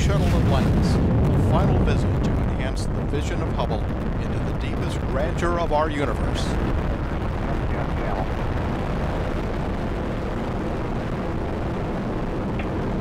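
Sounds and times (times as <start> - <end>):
rocket exhaust low rumble: 0.0 - 13.0.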